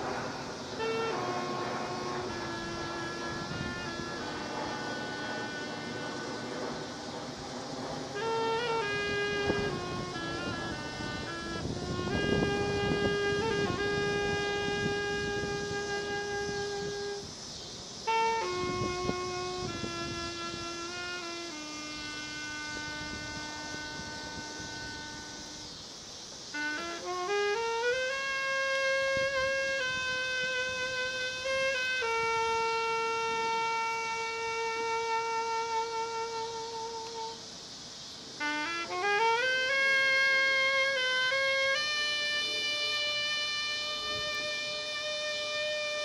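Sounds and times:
saxophone holding a long note: 0:00.0 - 0:17.4, 0:18.0 - 0:46.0.

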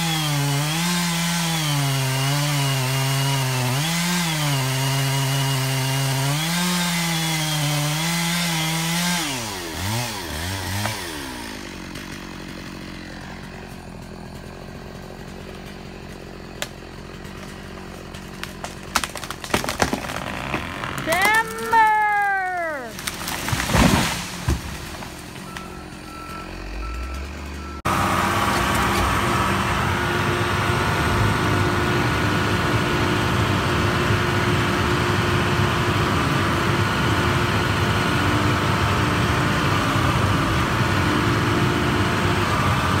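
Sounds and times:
chainsaw idling: 0:00.0 - 0:43.0
loader engine running: 0:00.0 - 0:43.0
tree cracking: 0:00.1 - 0:26.0.

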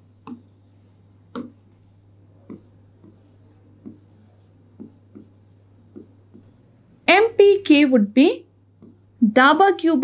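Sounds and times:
faint low hum: 0:00.0 - 0:10.0
stylus tapping on screen: 0:04.8 - 0:06.5.

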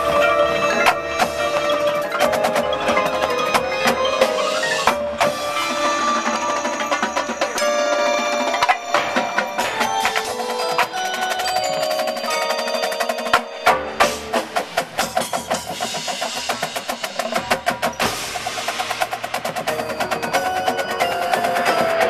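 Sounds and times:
mallet percussion: 0:00.0 - 0:22.0
snare drumline rolls: 0:00.0 - 0:22.0.

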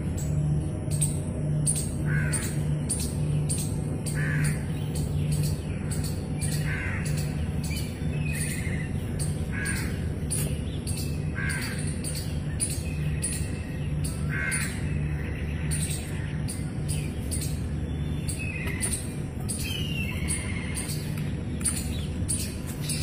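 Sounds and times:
bird calling: 0:00.1 - 0:23.0.

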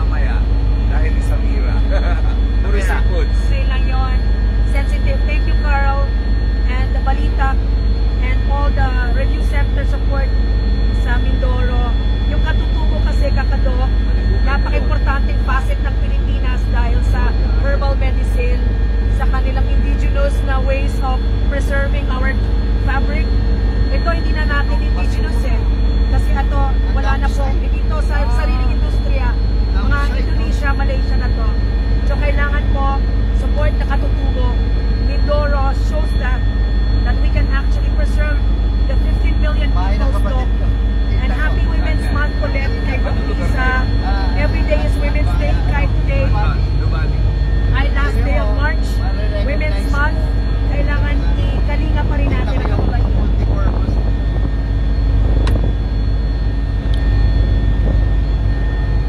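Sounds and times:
helicopter engine and rotor drone: 0:00.0 - 0:59.0
whining tones: 0:00.0 - 0:59.0.

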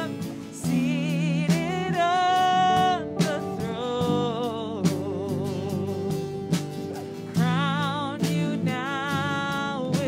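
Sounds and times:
person singing: 0:00.0 - 0:10.0
worship band playing: 0:00.0 - 0:10.0.

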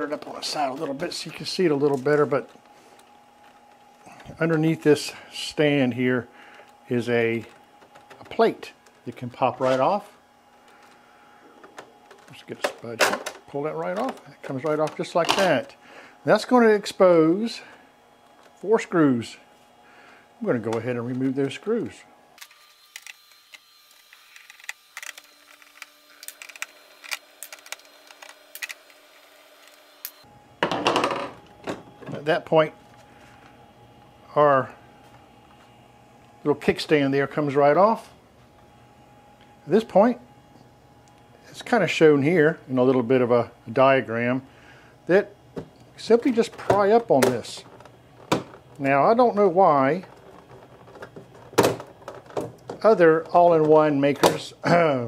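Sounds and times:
man talking: 0:00.0 - 0:02.6, 0:04.1 - 0:06.3, 0:06.9 - 0:10.2, 0:12.2 - 0:17.8, 0:18.6 - 0:19.5, 0:20.4 - 0:22.1, 0:32.0 - 0:32.8, 0:34.2 - 0:34.8, 0:36.4 - 0:38.2, 0:39.6 - 0:40.2, 0:41.5 - 0:44.5, 0:45.1 - 0:45.4, 0:46.0 - 0:47.7, 0:48.8 - 0:50.2, 0:52.8 - 0:55.0
screwdriver and screws clicking: 0:24.0 - 0:29.0
handling noise: 0:45.5 - 0:54.4.

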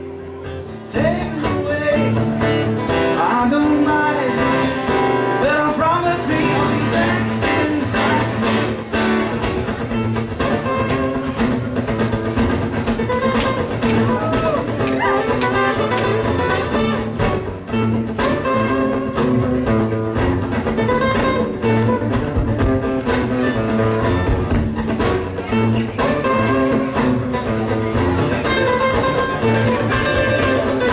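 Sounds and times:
looped guitar backing: 0:00.0 - 0:30.9
plucked guitar lines: 0:00.0 - 0:30.9.

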